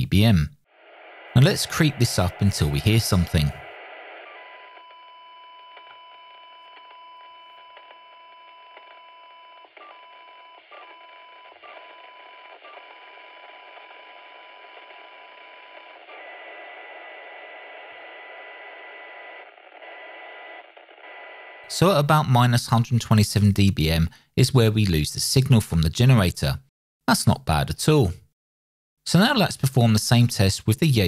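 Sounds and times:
receiver hiss: 0.8s - 4.8s, 16.0s - 21.7s.

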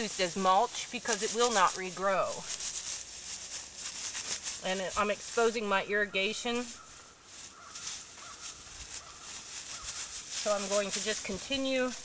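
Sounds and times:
dry straw rustling: 0.0s - 12.0s.

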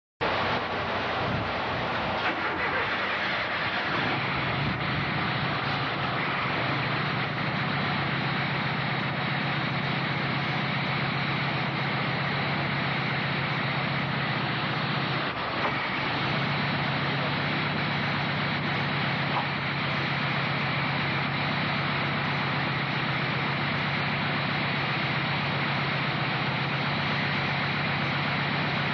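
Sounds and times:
car engine running: 0.2s - 28.9s.

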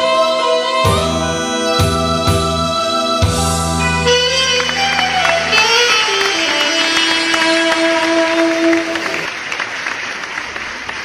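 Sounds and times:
live band playing: 0.0s - 9.4s
audience applause: 4.2s - 11.0s.

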